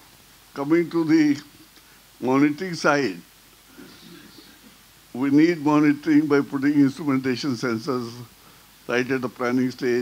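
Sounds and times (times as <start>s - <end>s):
faint room murmur: 0.0s - 10.0s
man speaking through microphone: 0.6s - 1.6s, 2.2s - 8.3s, 8.9s - 10.0s.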